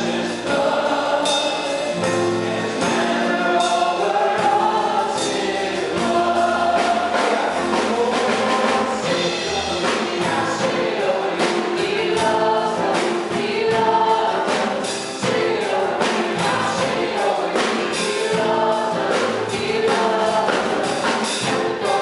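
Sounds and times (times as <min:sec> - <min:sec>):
drum kit with cymbals: 0:00.0 - 0:22.0
piano: 0:00.0 - 0:22.0
women singing in harmony: 0:00.0 - 0:22.0.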